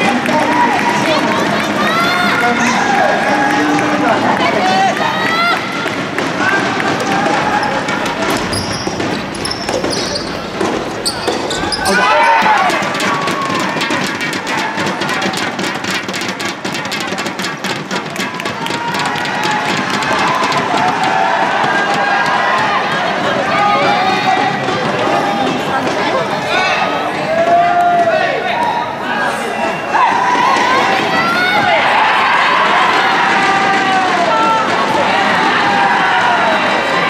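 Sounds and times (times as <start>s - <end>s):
players and spectators shouting: 0.0s - 37.0s
rubber ball impacts: 5.9s - 18.4s
rapid clapping: 12.0s - 23.2s.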